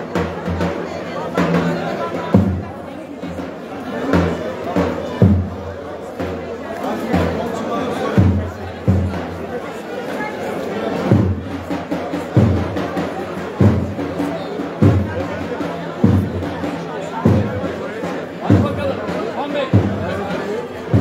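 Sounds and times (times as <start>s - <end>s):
crowd chatter: 0.0s - 21.0s
bass drum beat: 14.8s - 21.0s.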